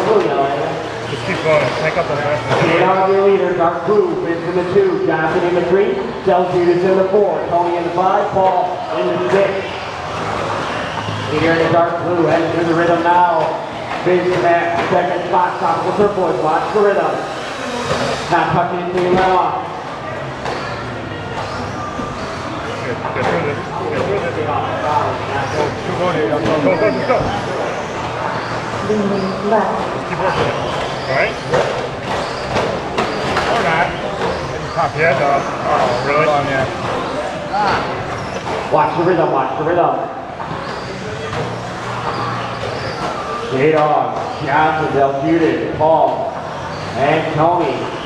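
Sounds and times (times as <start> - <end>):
voices talking: 0.0 - 48.0
rc truck motor whine: 15.5 - 18.4.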